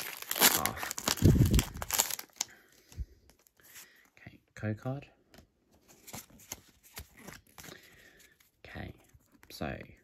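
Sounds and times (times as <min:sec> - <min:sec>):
trading cards rustling: 0:00.0 - 0:03.8, 0:05.8 - 0:10.0.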